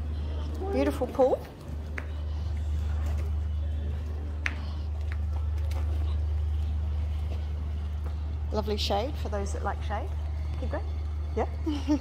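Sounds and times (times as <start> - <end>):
faint background noise: 0.0 - 12.0
low mechanical hum: 0.0 - 12.0.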